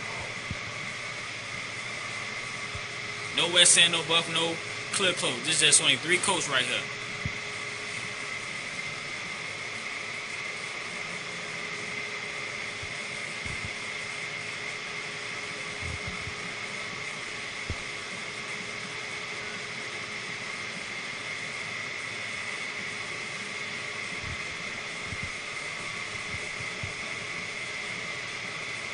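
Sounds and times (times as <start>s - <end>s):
constant high whine: 0.0s - 28.9s
ventilation fan whirring: 0.0s - 28.9s.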